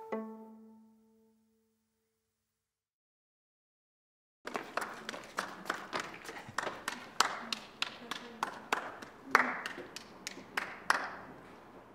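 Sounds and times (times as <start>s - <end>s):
hands clapping: 4.5s - 11.4s.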